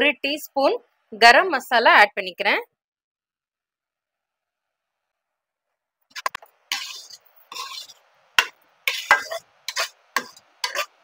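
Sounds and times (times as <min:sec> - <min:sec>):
metal spoon scraping a pan: 0:06.1 - 0:11.0.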